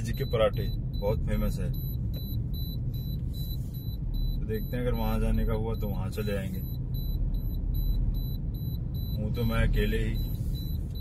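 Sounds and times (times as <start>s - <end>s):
car engine and road rumble: 0.0s - 11.0s
short high warning beeps: 0.0s - 11.0s.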